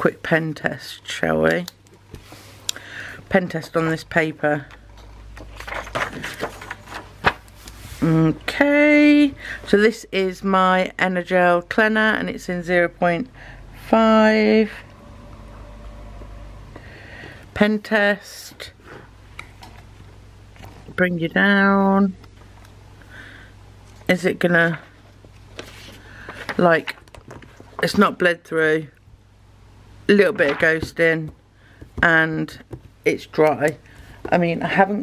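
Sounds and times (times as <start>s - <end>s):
notebook pages turning: 5.4s - 7.8s
paper rustling: 5.4s - 8.1s, 25.4s - 27.0s
low hum: 11.8s - 17.8s.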